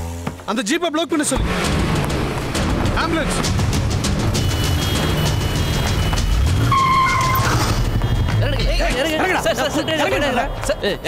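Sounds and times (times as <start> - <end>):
vehicle engine and road noise: 0.0 - 11.0
dramatic film score: 1.4 - 11.0.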